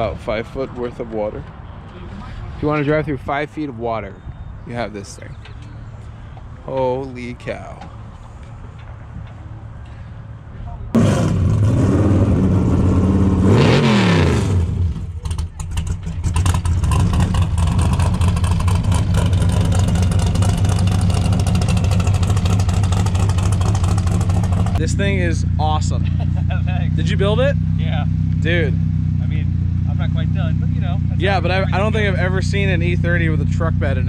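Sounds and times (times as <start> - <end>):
loud engine revving and idling: 11.0 - 34.0.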